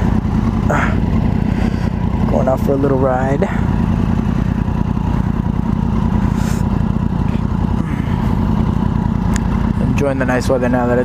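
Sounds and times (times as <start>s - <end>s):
motorcycle engines at low revs: 0.0s - 11.0s.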